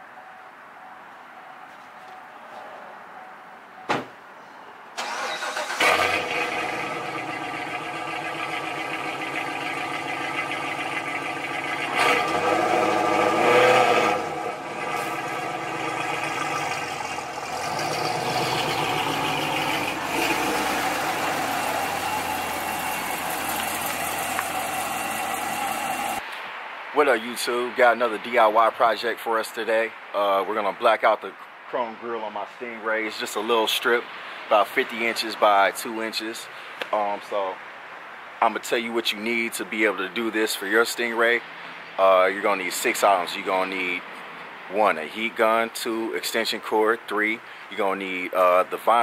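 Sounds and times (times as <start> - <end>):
car door thumping shut: 3.9 - 4.2
car engine starting and revving: 5.0 - 26.2.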